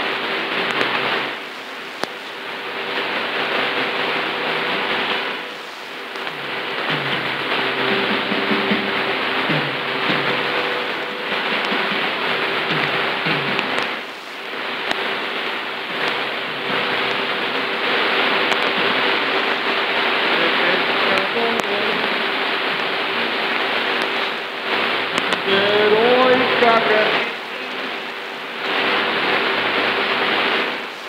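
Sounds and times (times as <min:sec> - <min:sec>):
faint music on radio: 0:00.0 - 0:31.0
radio static and hiss: 0:00.0 - 0:31.0.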